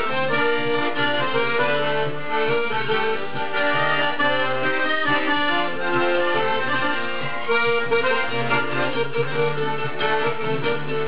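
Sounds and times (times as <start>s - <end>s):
accordion playing a tune: 0.0s - 11.0s.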